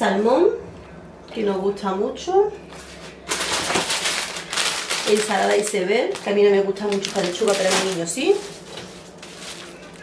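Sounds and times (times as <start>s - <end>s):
plastic bag crinkling: 2.8s - 10.0s.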